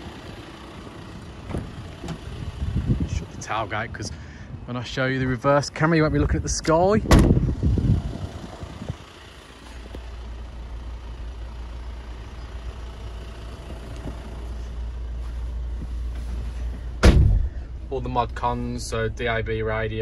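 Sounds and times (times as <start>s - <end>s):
low rumble inside cab: 0.0s - 20.0s
van door shutting: 1.3s - 2.9s, 7.0s - 7.6s, 16.2s - 17.7s
loud thump: 7.0s - 7.5s, 17.0s - 17.7s.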